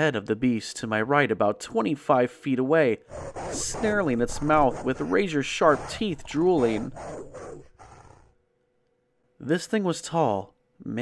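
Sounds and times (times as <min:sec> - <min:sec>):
beast snarling: 0:03.0 - 0:08.4.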